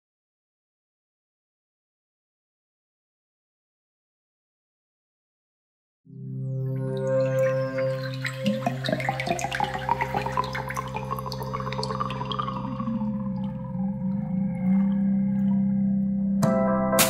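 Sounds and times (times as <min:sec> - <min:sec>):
bubbling dripping sound effects: 0:06.7 - 0:16.4.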